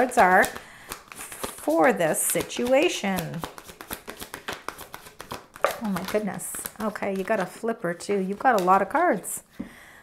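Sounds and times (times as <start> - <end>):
cards being shuffled: 0.0 - 7.6.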